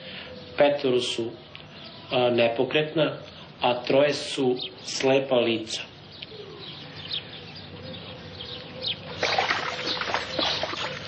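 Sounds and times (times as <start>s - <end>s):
water splashing and trickling: 9.1s - 11.0s.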